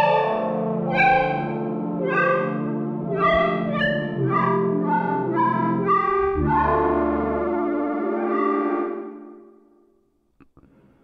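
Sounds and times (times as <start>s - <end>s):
synthesizer choir pad chords: 0.0s - 9.5s.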